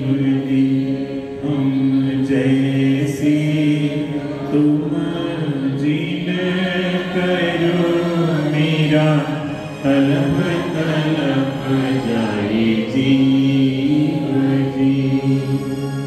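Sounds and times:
devotional chanting with music: 0.0s - 16.0s.

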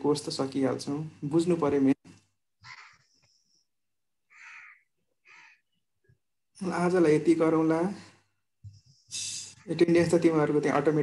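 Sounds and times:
harsh bird calls: 2.6s - 3.5s, 4.3s - 5.8s.

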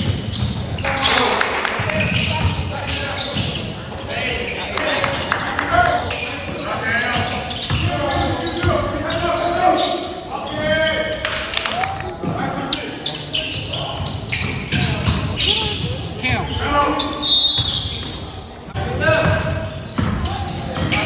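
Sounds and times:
echoing indistinct voices: 0.7s - 21.0s.

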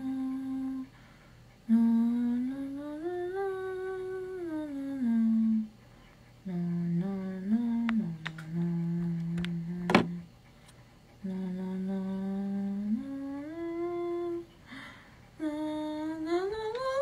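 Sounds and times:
woman humming: 0.0s - 0.9s, 1.7s - 5.7s, 6.4s - 10.3s, 11.2s - 14.5s, 15.4s - 17.0s.

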